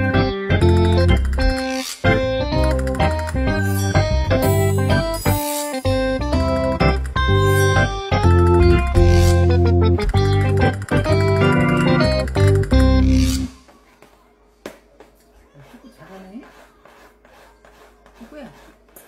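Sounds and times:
keyboard background music: 0:00.0 - 0:13.7.

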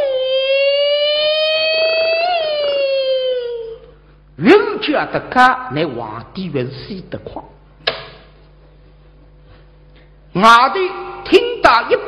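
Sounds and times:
woman's long high cry: 0:00.0 - 0:03.9.

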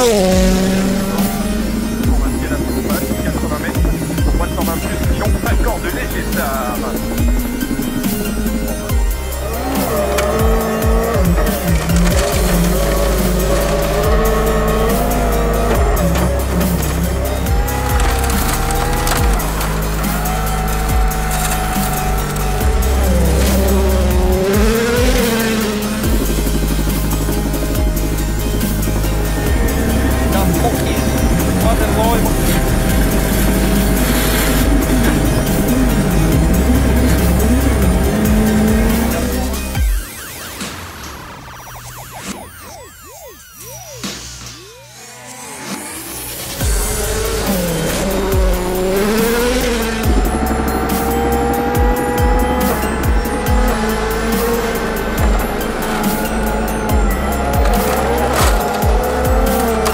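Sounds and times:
rally car engines revving: 0:00.0 - 0:42.4, 0:44.0 - 0:59.9
music beat: 0:00.0 - 0:59.9.

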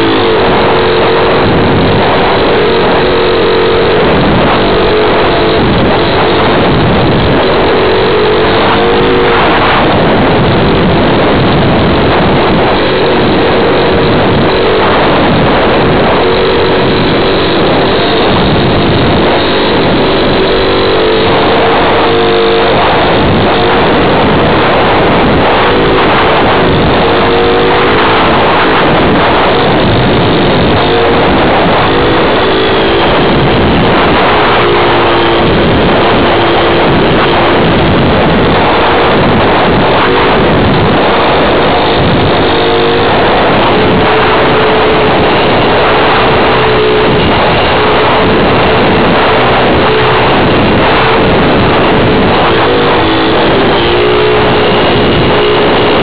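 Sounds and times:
rushing airflow: 0:00.0 - 0:56.0.

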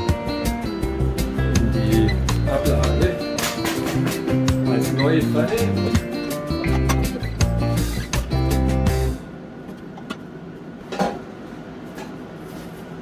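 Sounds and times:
plucked guitar music: 0:00.0 - 0:09.3
pots and pans clinking in drawer: 0:06.6 - 0:07.2.

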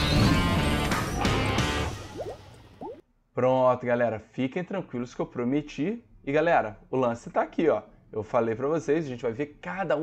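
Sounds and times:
rising bubbly blips: 0:01.8 - 0:03.0.

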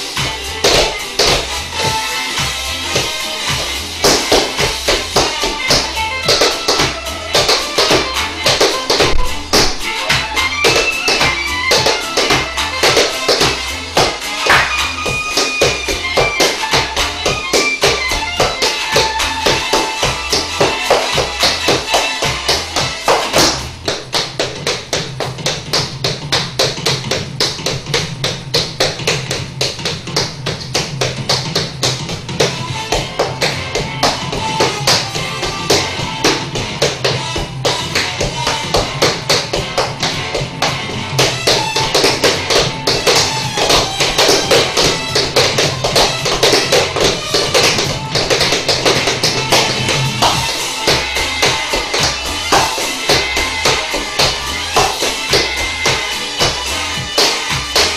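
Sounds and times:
recorded music track: 0:00.0 - 0:57.9
tap shoes on wooden floor: 0:00.1 - 0:57.9.

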